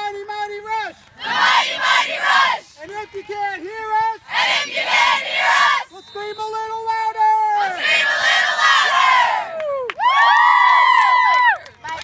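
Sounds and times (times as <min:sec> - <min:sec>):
boys cheering: 0:08.5 - 0:11.6.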